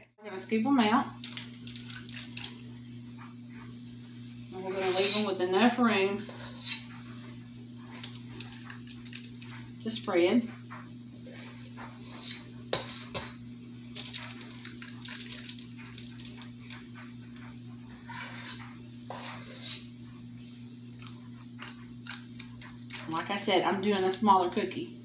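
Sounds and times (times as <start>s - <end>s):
metal scoop scraping steel bowl: 4.6s - 7.0s, 11.2s - 13.4s, 17.9s - 20.0s.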